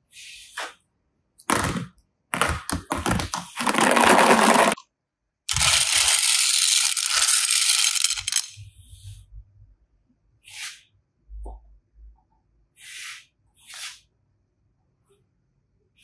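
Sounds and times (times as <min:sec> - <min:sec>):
plastic beads stirred by hand: 0:02.4 - 0:04.8, 0:05.5 - 0:08.6
plastic toys clattering: 0:02.4 - 0:04.8, 0:05.5 - 0:08.6.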